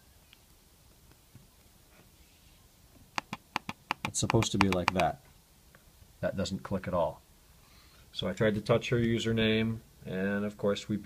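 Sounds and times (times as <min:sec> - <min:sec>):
laptop trackpad clicks: 0:03.2 - 0:05.1.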